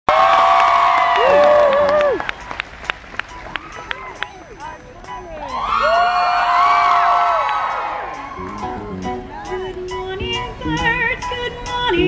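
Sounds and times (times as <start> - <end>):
audience cheering and whooping: 0.1 - 2.4, 5.4 - 9.1.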